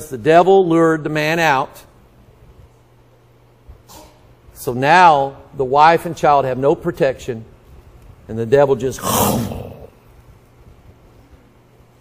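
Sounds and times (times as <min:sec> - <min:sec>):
man roaring like a lion: 0:09.0 - 0:10.0.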